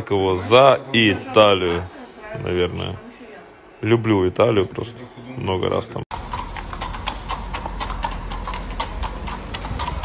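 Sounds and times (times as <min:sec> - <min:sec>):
horse hooves clip-clopping: 0:06.1 - 0:10.0.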